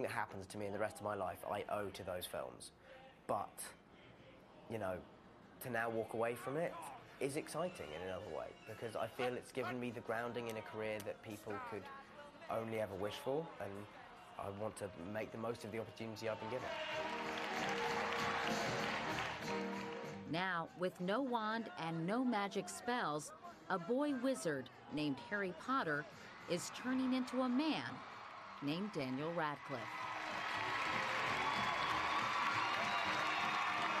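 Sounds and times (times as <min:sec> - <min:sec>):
audience applauding and cheering: 0:15.8 - 0:20.3, 0:26.6 - 0:34.0.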